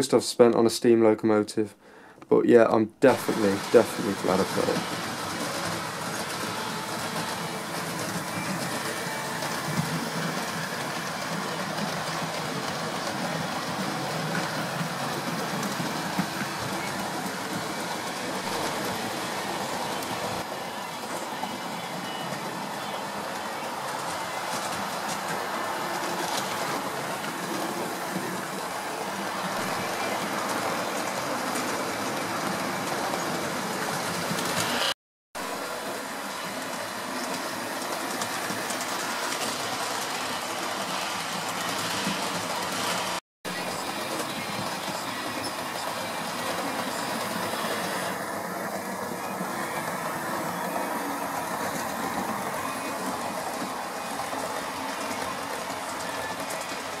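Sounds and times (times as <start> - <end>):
wheels rumbling on rail: 3.1 - 57.0.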